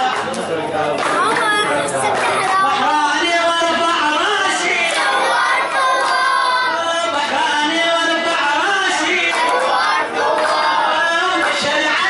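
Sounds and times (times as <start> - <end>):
boys chattering: 0.2 - 3.2.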